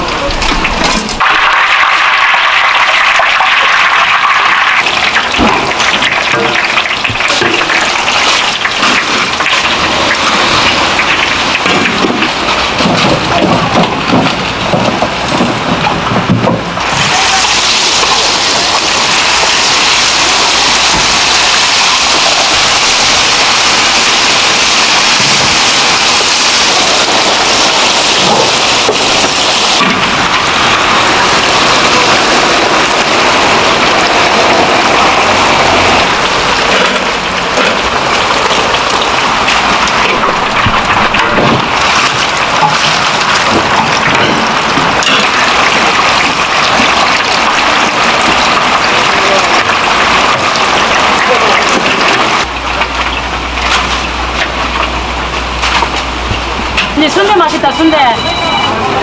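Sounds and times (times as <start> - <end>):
deep-frying sizzle: 0.0 - 59.0.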